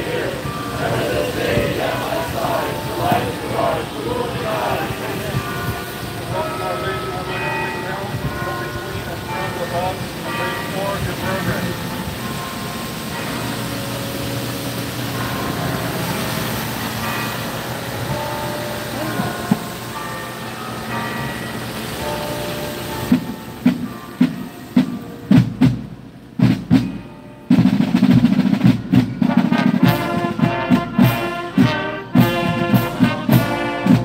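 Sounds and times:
marching band drums: 0.0s - 5.9s, 23.0s - 34.0s
brass band playing: 0.0s - 7.2s, 23.1s - 34.0s
street noise: 0.0s - 34.0s.

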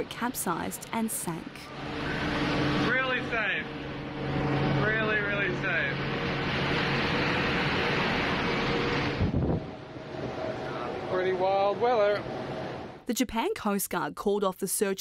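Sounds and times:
low drone of ship machinery: 0.0s - 13.0s.

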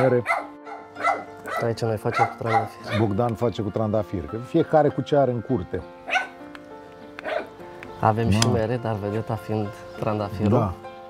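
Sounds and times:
dog barking: 0.0s - 3.1s, 6.0s - 6.4s, 7.2s - 7.5s
background music: 0.0s - 11.0s.

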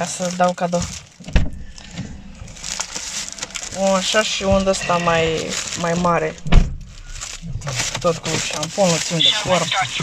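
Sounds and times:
plastic bags rustling: 0.0s - 10.0s
sharp thump: 1.3s - 2.2s, 6.3s - 7.7s.

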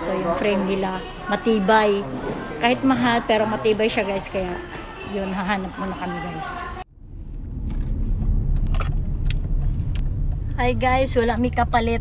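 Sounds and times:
low road rumble in car: 6.9s - 12.0s.

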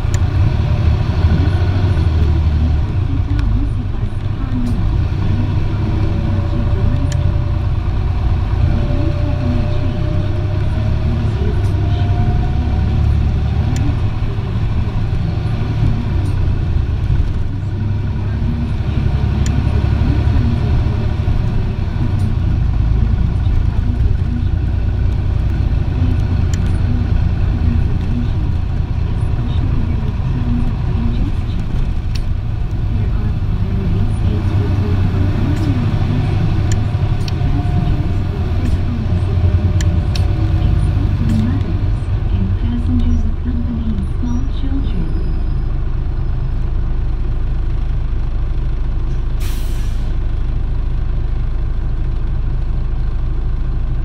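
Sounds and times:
bus diesel engine drone: 0.0s - 54.0s
road noise: 0.0s - 54.0s.

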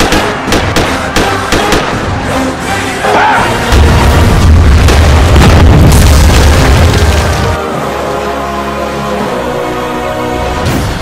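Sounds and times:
dramatic trailer music: 0.0s - 11.0s
deep rumble with impacts: 3.7s - 7.6s
heavy explosion boom: 3.7s - 7.6s.

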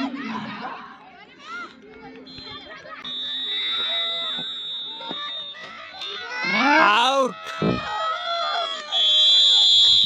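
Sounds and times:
voices shouting: 2.2s - 9.0s
referee's whistle blast: 2.3s - 5.7s.

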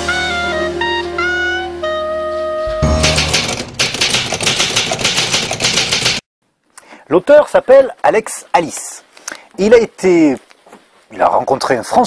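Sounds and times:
rapid typewriter keystrokes: 2.8s - 6.2s.

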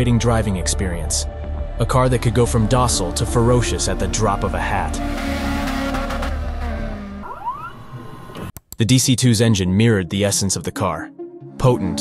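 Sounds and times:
rising pitch sweep: 3.0s - 8.5s
car engine revving past: 3.7s - 8.5s.

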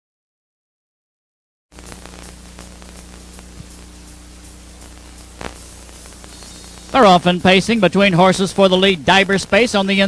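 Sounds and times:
tape hiss: 1.7s - 10.0s
low electrical hum: 1.8s - 10.0s.

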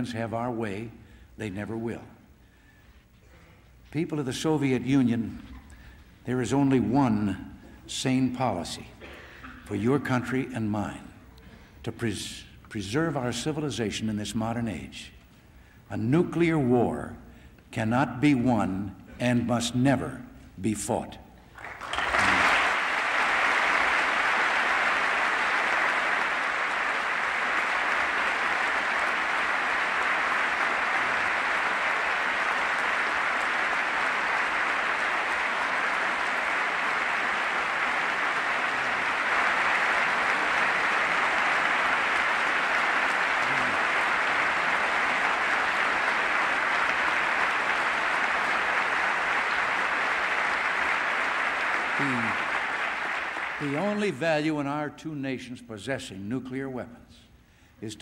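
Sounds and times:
audience applause: 21.6s - 54.0s.

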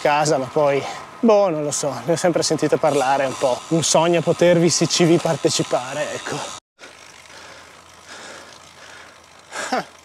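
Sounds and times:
bike tyres rolling on asphalt: 0.0s - 10.0s.

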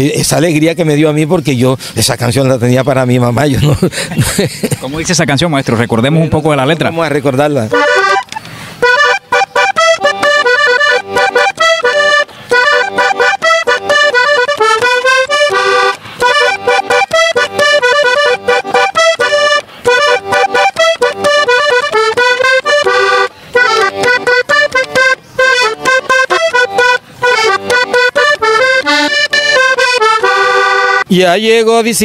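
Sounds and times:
button accordion playing: 7.6s - 31.1s.

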